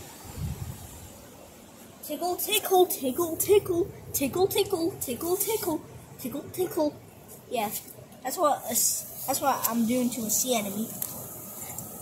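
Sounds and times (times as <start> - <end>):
wind rumble on microphone: 0.0 - 1.2
wind and waves hissing: 0.0 - 12.0.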